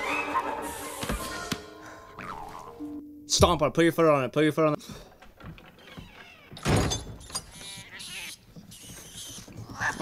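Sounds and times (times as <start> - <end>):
door banging shut: 5.4 - 7.4
small animal squealing: 7.2 - 10.0.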